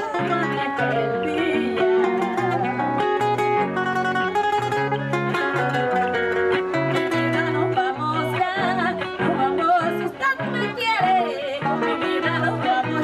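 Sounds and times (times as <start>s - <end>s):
woman singing with vibrato: 0.0s - 3.0s, 7.0s - 13.0s
strummed acoustic guitar: 0.0s - 13.0s.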